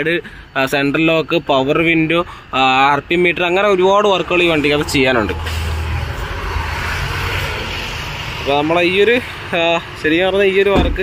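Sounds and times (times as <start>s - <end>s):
road vehicle passing by: 3.7s - 10.7s.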